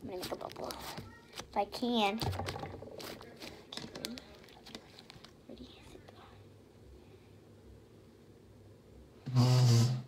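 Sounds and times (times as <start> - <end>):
slime fart-like squelch: 9.3 - 10.0.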